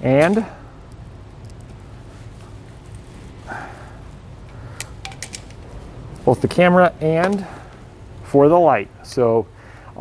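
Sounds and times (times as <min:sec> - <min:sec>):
steady low hum: 0:00.0 - 0:10.0
wire strippers clicking: 0:04.1 - 0:05.7.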